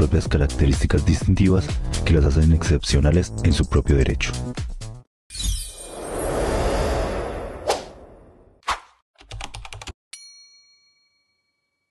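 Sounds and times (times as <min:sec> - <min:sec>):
keyboard typing clicks: 0:09.2 - 0:10.0
bright bell ding: 0:10.2 - 0:11.9.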